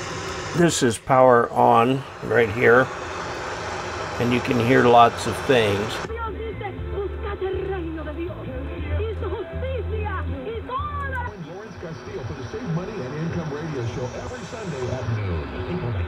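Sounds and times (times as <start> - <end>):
radio voice and music: 0.5 - 2.9, 4.2 - 6.1, 11.3 - 16.0.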